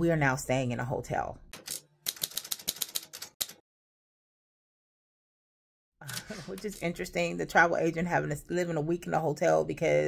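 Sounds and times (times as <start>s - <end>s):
typewriter keys clacking: 1.6s - 3.6s.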